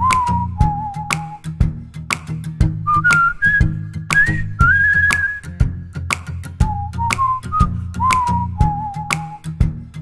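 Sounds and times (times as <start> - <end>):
whistled melody: 0.0 - 1.6, 2.8 - 5.8, 6.6 - 9.7
low accompaniment: 0.0 - 9.8
regular beat: 0.0 - 9.8.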